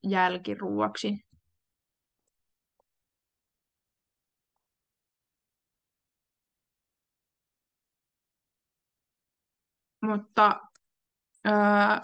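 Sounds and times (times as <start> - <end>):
woman speaking: 0.0 - 1.2, 10.0 - 10.8, 11.5 - 12.0.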